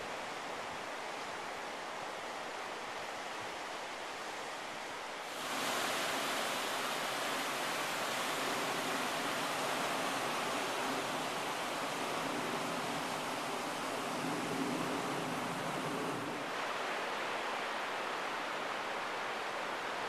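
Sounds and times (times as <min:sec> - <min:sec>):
ocean surf breaking: 0:05.3 - 0:16.6.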